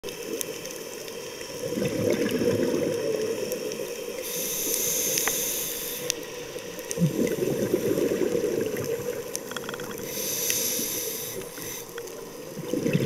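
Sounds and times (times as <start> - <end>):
faint clicks: 2.8 - 7.0, 9.2 - 12.5
scuba regulator breathing: 4.2 - 8.4, 9.9 - 12.2.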